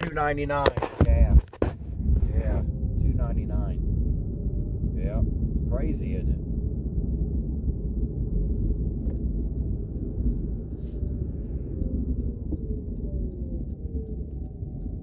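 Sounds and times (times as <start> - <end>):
car cabin road rumble: 0.0 - 15.0.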